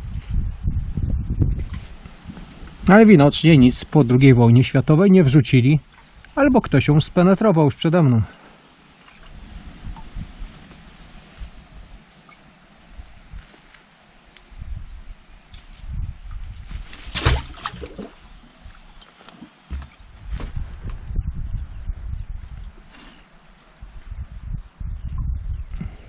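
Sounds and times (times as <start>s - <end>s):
wind rumbling on microphone: 0.0s - 7.4s, 8.1s - 26.0s.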